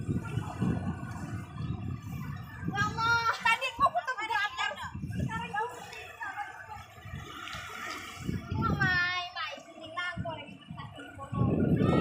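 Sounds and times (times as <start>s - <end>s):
waves washing on sand: 0.0s - 9.4s
wind: 0.0s - 12.0s.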